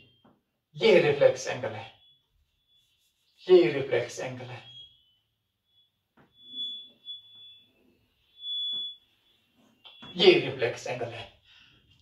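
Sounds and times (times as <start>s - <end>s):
chalk squealing on chalkboard: 2.7s - 4.8s.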